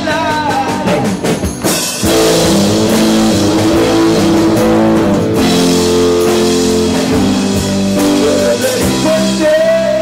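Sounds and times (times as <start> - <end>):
drum kit: 0.0 - 10.0
live rock band playing: 0.0 - 10.0
electric guitars: 0.6 - 10.0.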